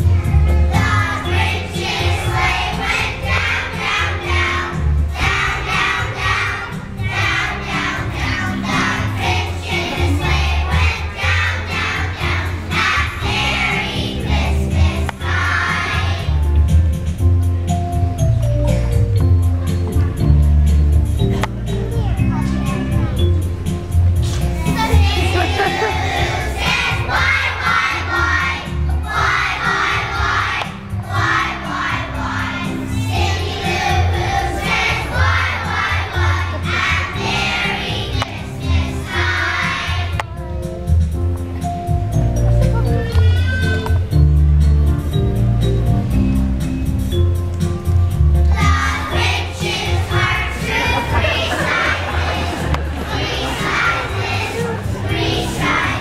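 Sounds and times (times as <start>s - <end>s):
backing music with bass line: 0.0s - 56.0s
young children chattering: 6.2s - 12.6s, 18.4s - 28.4s, 29.8s - 44.4s, 49.9s - 56.0s.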